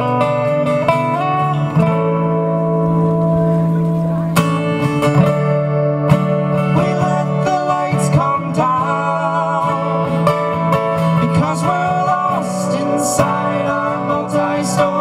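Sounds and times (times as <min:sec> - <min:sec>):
acoustic guitars playing folk music: 0:00.0 - 0:15.0.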